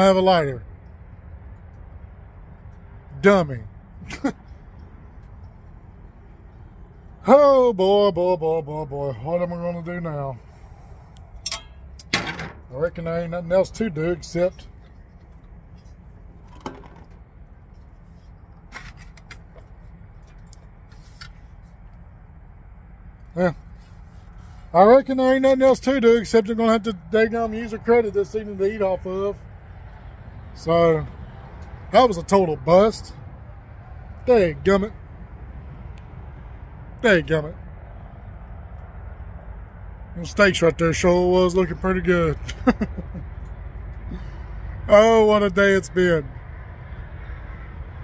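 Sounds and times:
low engine rumble: 0.0 - 48.0.

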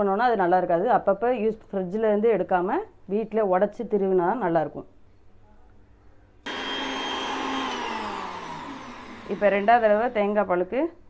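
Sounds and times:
mixer grinder whining: 6.5 - 10.5.

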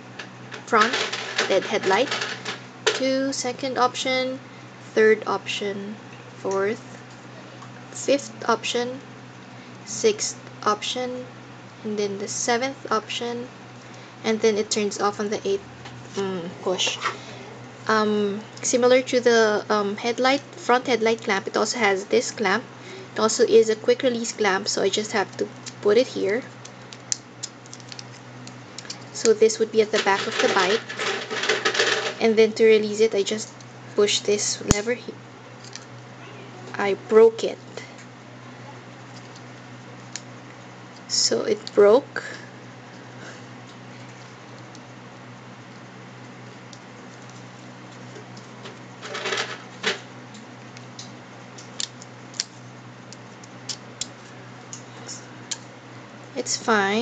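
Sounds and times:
steady low hum: 0.0 - 57.0
plastic rubbing: 29.8 - 32.2.

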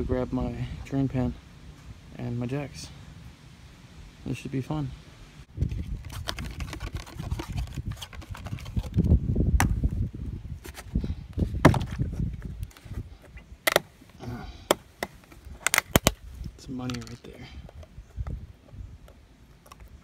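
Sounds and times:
cardboard and plastic handling: 5.6 - 9.9, 10.6 - 16.2.

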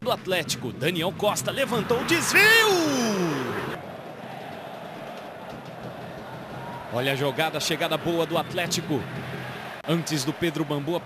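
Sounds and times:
commentator exclaiming: 1.8 - 3.7.

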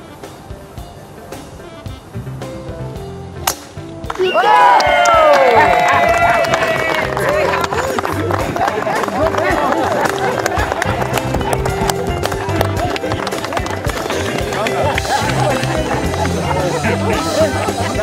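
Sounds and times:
golf club striking ball: 3.4 - 3.8
crowd cheering and applauding: 4.0 - 18.0.

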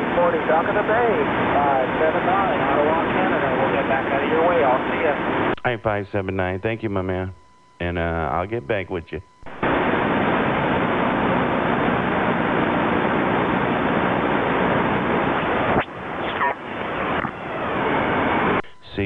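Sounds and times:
radio static hiss: 0.0 - 19.0.

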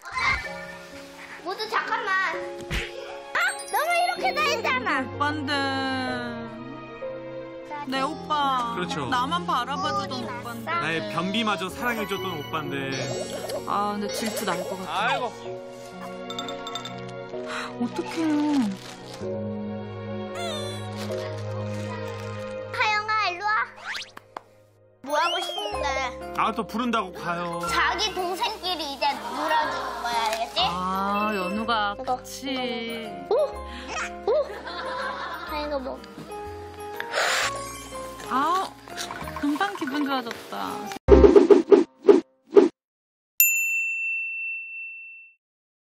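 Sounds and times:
high clear bell ding: 16.3 - 17.0, 43.4 - 45.4
cartoon swooping sound effect: 23.8 - 24.1, 41.1 - 42.7.

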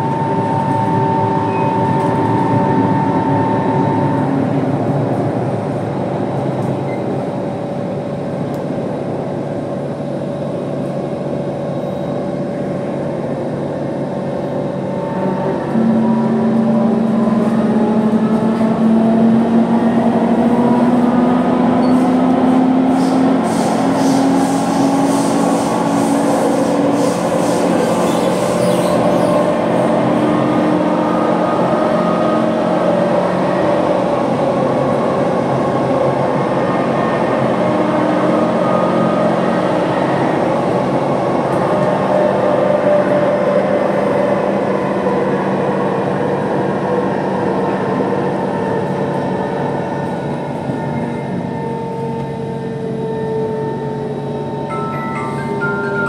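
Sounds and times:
train traction motor whine: 0.0 - 56.0
wheels rumbling on rail: 0.0 - 56.0.

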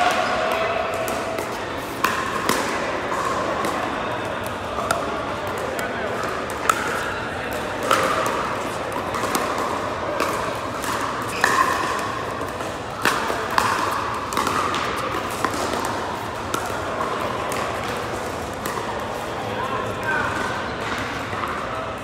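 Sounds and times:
chatter of players: 0.0 - 22.0.

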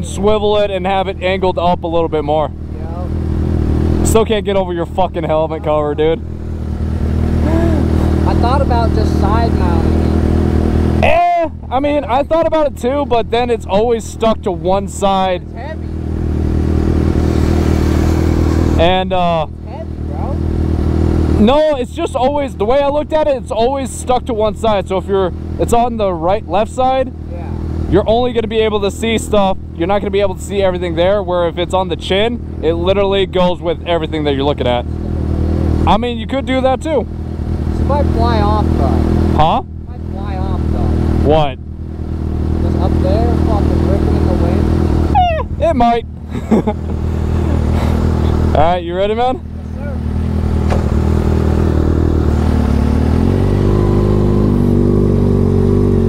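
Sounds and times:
motorcycle engines idling: 0.0 - 56.0.

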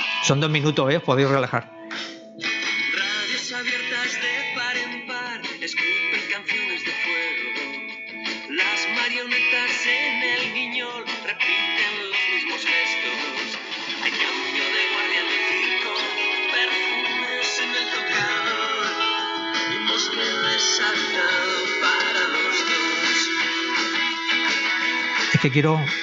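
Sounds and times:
song with guitar from phone: 0.0 - 26.0.

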